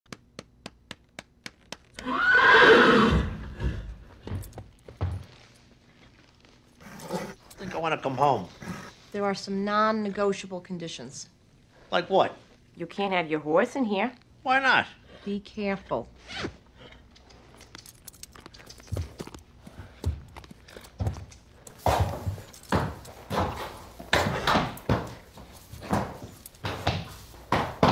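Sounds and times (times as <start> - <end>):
horse whinnying: 2.0 - 3.9
saddle creaking and clicking: 3.7 - 8.8, 16.3 - 27.9.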